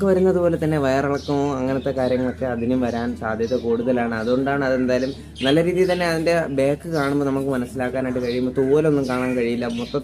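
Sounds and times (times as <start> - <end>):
man talking: 0.0 - 10.0
pigeons cooing: 0.0 - 10.0.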